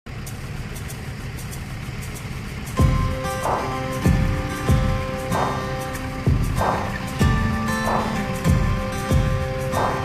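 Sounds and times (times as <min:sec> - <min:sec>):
snowplow engine low rumble: 0:00.1 - 0:10.0.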